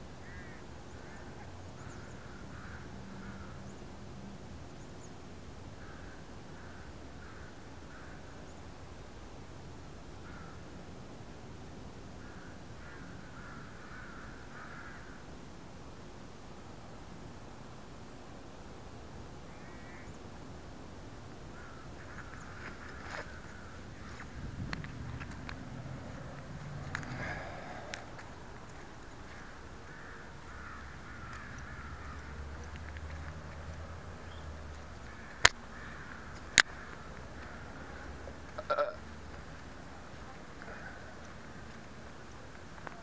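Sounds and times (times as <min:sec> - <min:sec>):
crow cawing: 0:00.2 - 0:03.6, 0:05.8 - 0:08.3, 0:10.2 - 0:10.6, 0:12.2 - 0:15.2, 0:19.5 - 0:20.1, 0:21.5 - 0:24.3, 0:25.9 - 0:28.4, 0:29.3 - 0:32.7, 0:35.0 - 0:39.0, 0:40.6 - 0:41.3
steady low rumble: 0:23.3 - 0:42.3.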